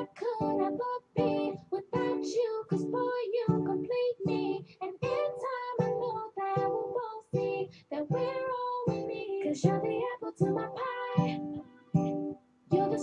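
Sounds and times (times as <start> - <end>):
woman singing: 0.0 - 12.0, 12.7 - 13.0.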